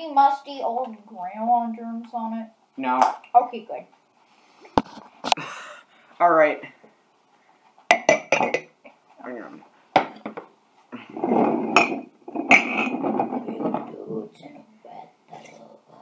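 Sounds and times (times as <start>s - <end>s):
ceramic mugs clinking: 7.9s - 8.8s, 11.3s - 13.9s
mugs scraping on wooden table: 11.0s - 14.0s.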